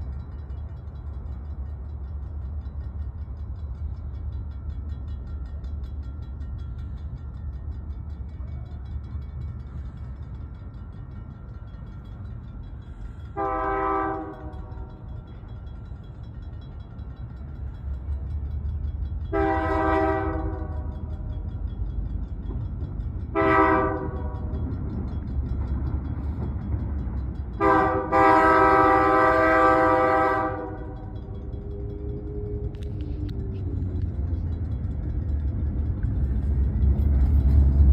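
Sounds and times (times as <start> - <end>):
low locomotive rumble: 0.0 - 37.9
locomotive air horn: 13.4 - 14.9, 19.3 - 21.0, 23.3 - 24.5, 27.6 - 31.1
low rumble: 30.2 - 37.9.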